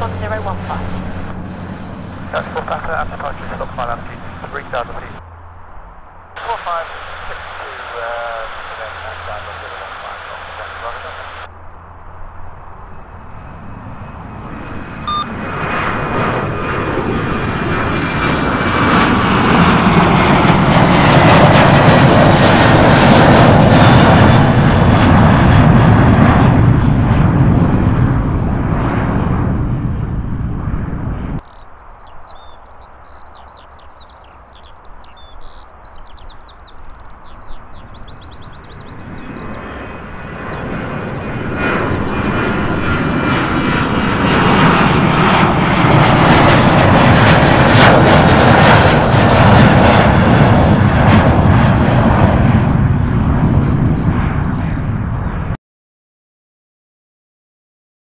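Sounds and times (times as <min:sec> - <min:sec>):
jet engines at takeoff: 0:00.0 - 0:55.6.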